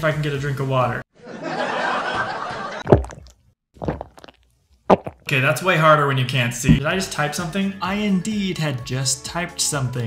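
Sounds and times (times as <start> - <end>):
person sipping water: 2.9 - 5.3.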